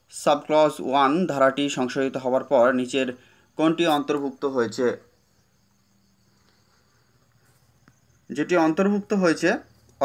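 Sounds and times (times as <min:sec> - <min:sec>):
high-pitched chirring like crickets: 0:00.0 - 0:10.0
man speaking: 0:00.1 - 0:05.2, 0:08.3 - 0:09.7.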